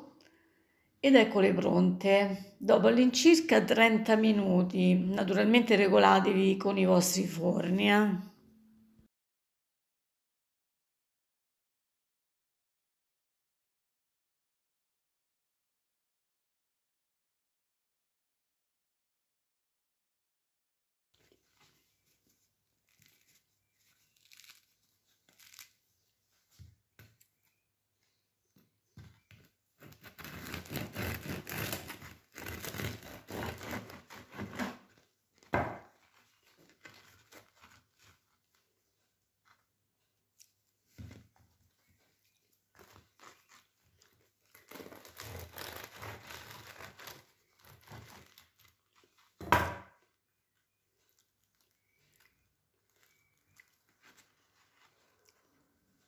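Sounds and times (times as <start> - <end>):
bread crust crackling and tearing: 22.8 - 25.8, 29.8 - 34.6, 42.7 - 49.3, 51.0 - 55.5.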